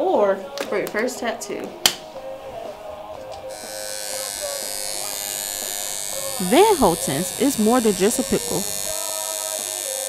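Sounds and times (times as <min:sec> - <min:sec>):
tattoo machine buzzing: 0:02.1 - 0:10.0.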